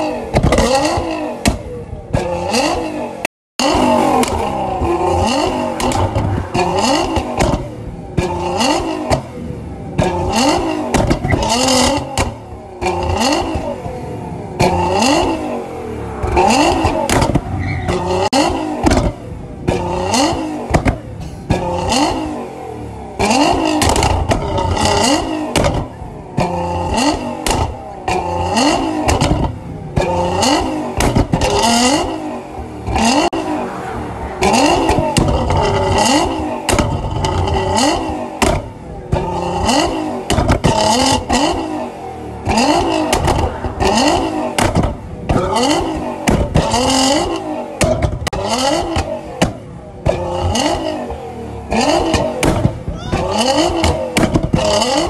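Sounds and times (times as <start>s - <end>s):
car engine revving: 0.0s - 55.0s
exhaust bangs and crackles: 0.0s - 55.0s.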